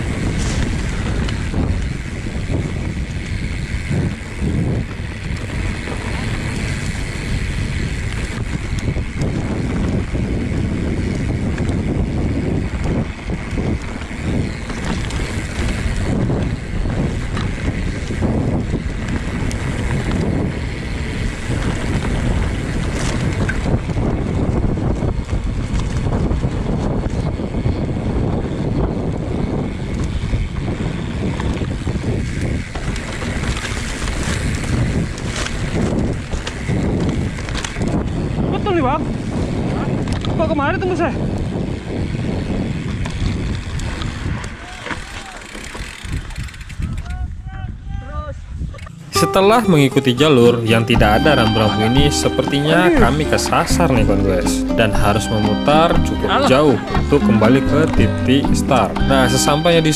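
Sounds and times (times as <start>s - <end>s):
bike knocking and rattling: 0.0s - 47.2s
wind buffeting microphone: 0.0s - 49.2s.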